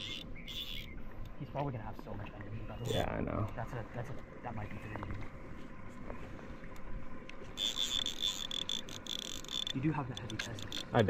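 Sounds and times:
fishing reel drag whirring: 0:00.0 - 0:01.0, 0:07.5 - 0:11.0
low wind: 0:00.0 - 0:11.0
water noise: 0:00.0 - 0:11.0.

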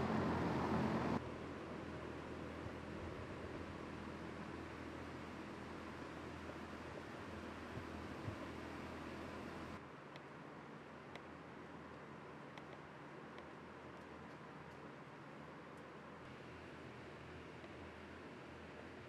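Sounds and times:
faint hum: 0:00.0 - 0:19.0
ventilation fans rushing air: 0:00.0 - 0:19.0.

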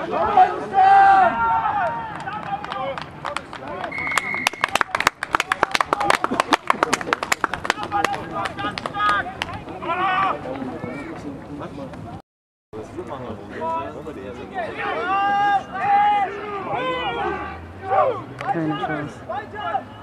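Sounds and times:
spectators clapping: 0:01.8 - 0:09.6
referee's whistle blast: 0:03.9 - 0:04.8
people calling out: 0:14.7 - 0:20.0.

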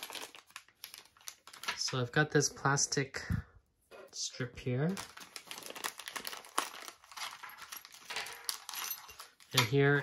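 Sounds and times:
plastic bag crinkling: 0:00.0 - 0:02.1, 0:04.8 - 0:10.0.

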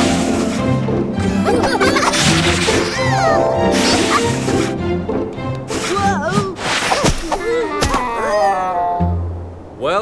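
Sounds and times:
background music: 0:00.0 - 0:07.0.

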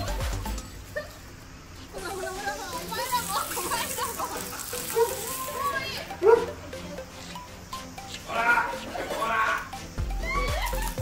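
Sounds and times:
people calling out outdoors: 0:01.8 - 0:11.0
loud rising cry: 0:08.3 - 0:11.0.

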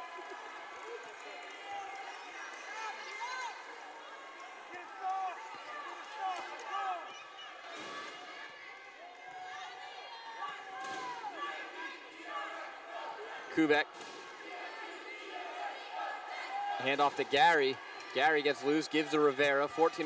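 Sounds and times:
arena crowd murmur: 0:00.0 - 0:20.0.

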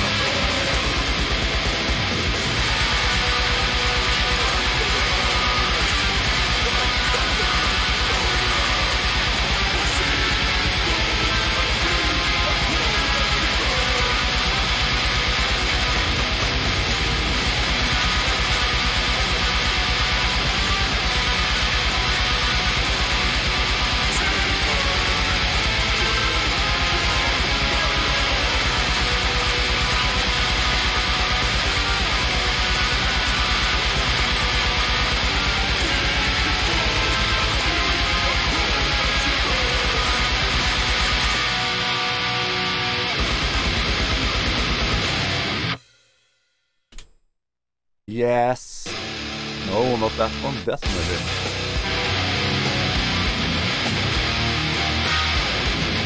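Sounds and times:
heavy metal distorted guitar riff: 0:00.0 - 0:45.9, 0:48.1 - 0:56.0.

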